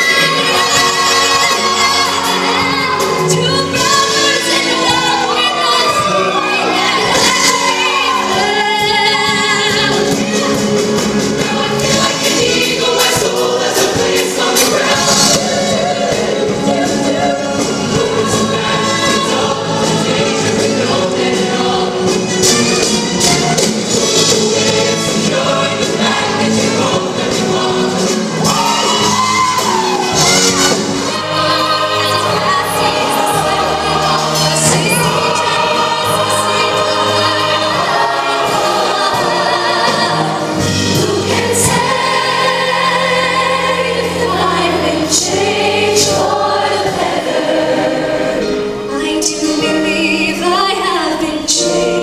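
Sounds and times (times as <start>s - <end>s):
woman singing into a microphone: 0.0s - 10.0s, 48.9s - 52.0s
choir singing upbeat song: 0.0s - 52.0s.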